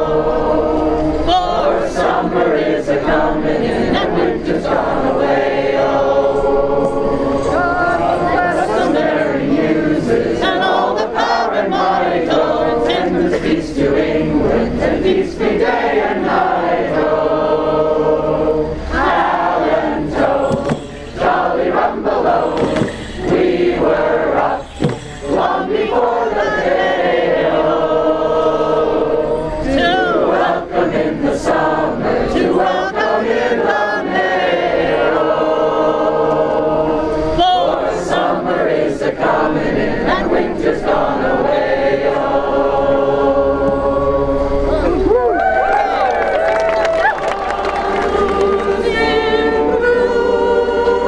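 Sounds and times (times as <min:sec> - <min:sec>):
group of people singing in chorus: 0:00.0 - 0:51.0.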